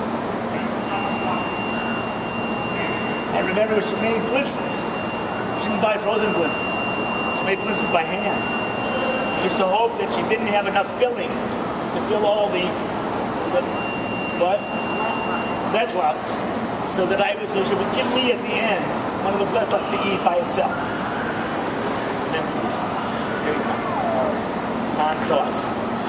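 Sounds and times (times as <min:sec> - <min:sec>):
airport terminal background noise: 0:00.0 - 0:26.0
ventilation hum: 0:00.0 - 0:26.0
high-pitched electronic tone: 0:00.6 - 0:10.0.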